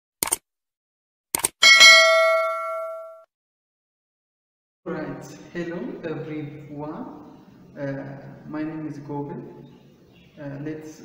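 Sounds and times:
notification bell ding: 1.6s - 3.2s.

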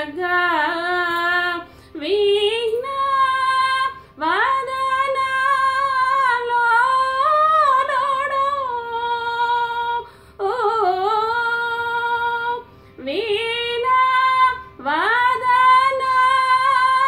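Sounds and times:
singer breathing: 1.6s - 2.0s, 10.0s - 10.4s, 12.6s - 13.0s.

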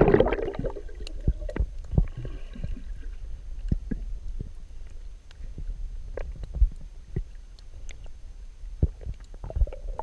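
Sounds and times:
underwater rumble of moving water: 0.0s - 10.0s.

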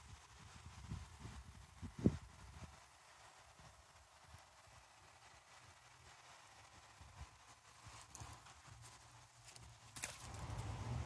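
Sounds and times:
footsteps on grass: 7.7s - 11.0s.

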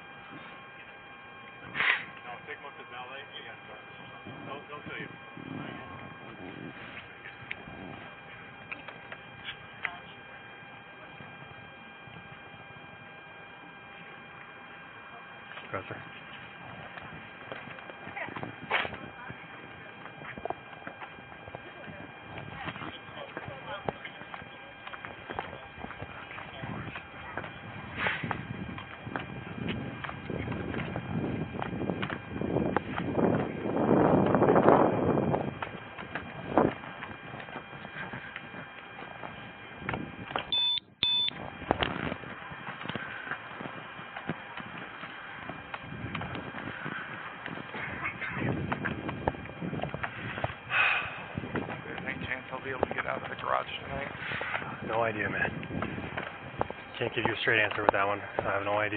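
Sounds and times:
faint electronic hum: 0.0s - 58.9s
footsteps: 15.5s - 40.5s, 41.4s - 58.9s
suitcase wheels clacking on pavement: 54.8s - 58.9s.

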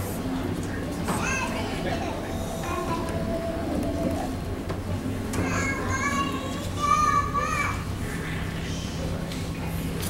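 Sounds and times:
murmur of large hall: 0.0s - 10.0s.

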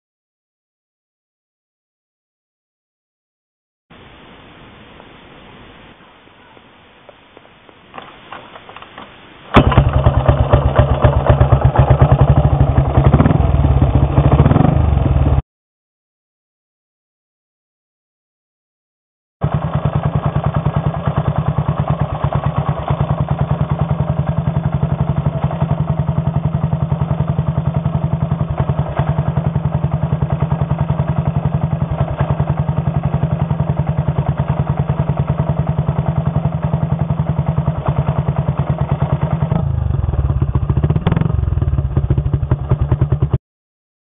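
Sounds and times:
motorcycle engine idling: 9.6s - 15.4s, 19.4s - 43.4s.

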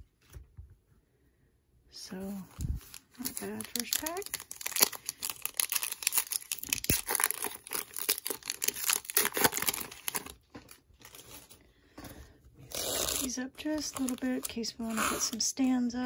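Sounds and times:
foil wrapper tearing and crinkling: 2.6s - 11.6s, 12.7s - 15.4s.

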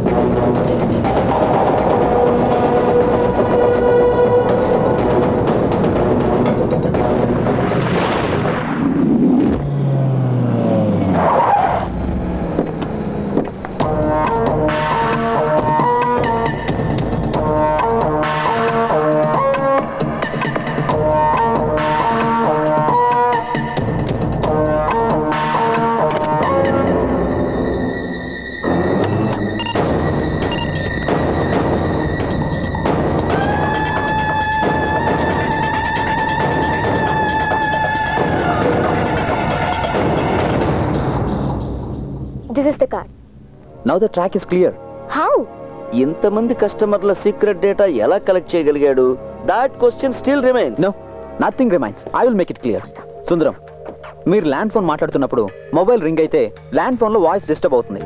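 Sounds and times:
orchestral film score: 0.0s - 9.1s, 11.5s - 58.0s.

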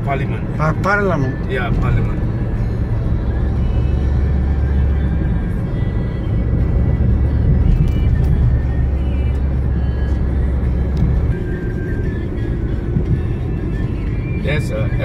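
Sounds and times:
vehicle cabin rumble: 0.0s - 15.0s.

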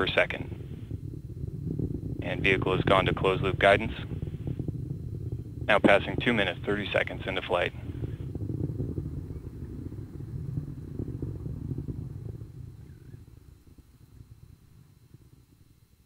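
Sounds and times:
rocket engine low rumble: 0.0s - 16.0s.

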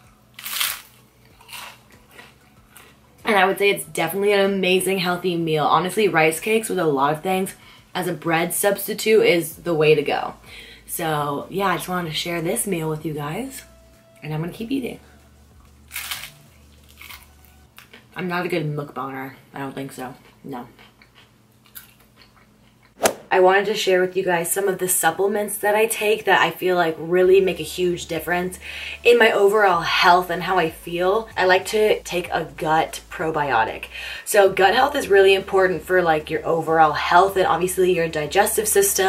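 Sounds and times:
crunchy bite of rice cake: 0.3s - 2.9s, 15.9s - 18.0s.

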